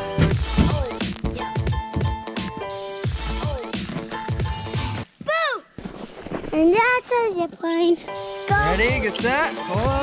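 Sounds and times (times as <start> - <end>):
electronic music with drum beat: 0.0 - 5.0, 8.2 - 10.0.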